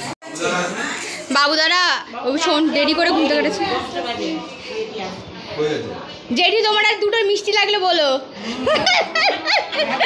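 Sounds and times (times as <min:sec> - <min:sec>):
woman laughing: 0:08.5 - 0:10.0.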